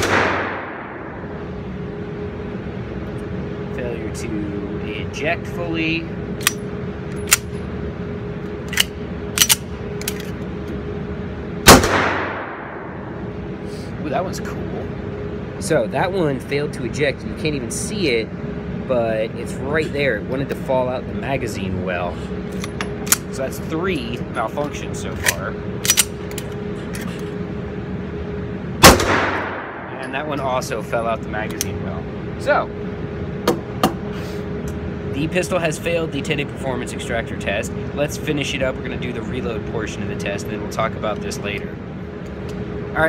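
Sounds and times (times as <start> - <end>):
pistol shot with echo: 0.0 - 1.3, 11.7 - 12.9, 28.8 - 29.9
steady hum: 0.0 - 43.0.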